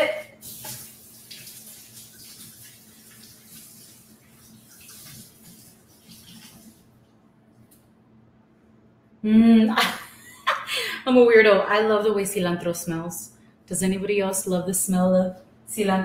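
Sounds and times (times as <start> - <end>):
faucet water running: 0.0 - 7.2.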